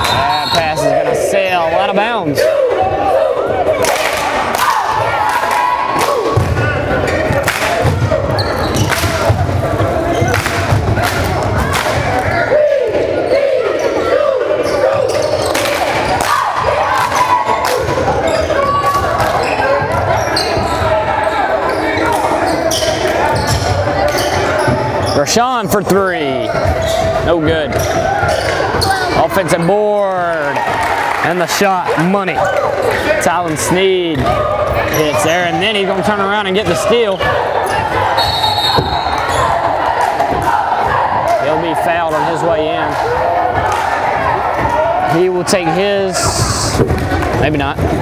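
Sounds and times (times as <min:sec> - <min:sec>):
voices of players and spectators: 0:00.0 - 0:48.0.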